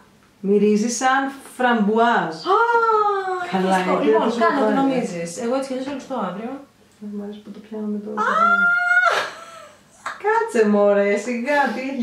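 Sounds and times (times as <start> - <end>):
woman squealing: 8.2 - 9.8.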